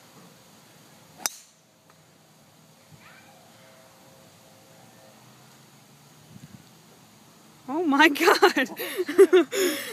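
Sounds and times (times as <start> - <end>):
golf club striking ball: 1.2 - 1.6.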